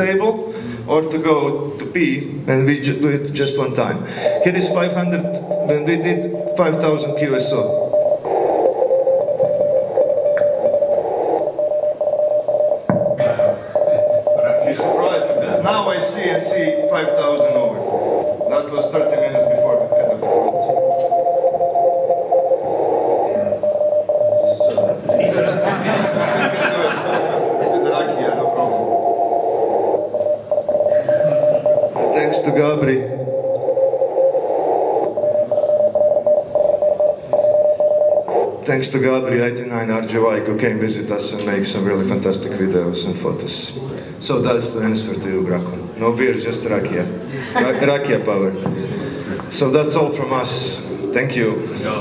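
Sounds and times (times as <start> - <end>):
radio hiss and signals: 4.1 - 11.6, 13.2 - 21.1, 22.3 - 35.8, 38.3 - 38.6
morse code tone: 4.1 - 38.8.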